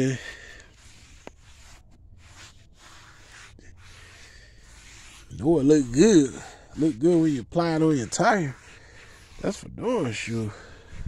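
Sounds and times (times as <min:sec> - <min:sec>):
foam pad rubbing on tire: 0:00.0 - 0:11.0.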